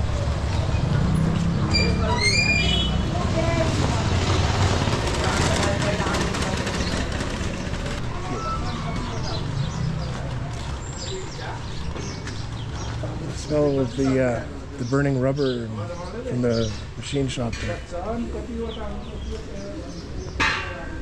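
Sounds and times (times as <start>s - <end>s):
people talking: 1.7s - 11.9s, 12.9s - 21.0s.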